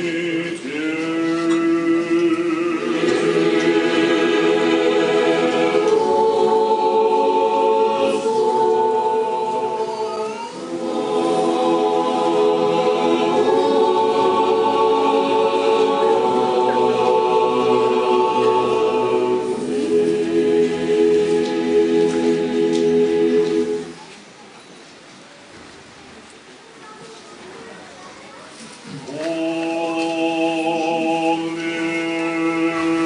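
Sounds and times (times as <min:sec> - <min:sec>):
choir singing chant a cappella: 0:00.0 - 0:24.1, 0:29.1 - 0:33.0.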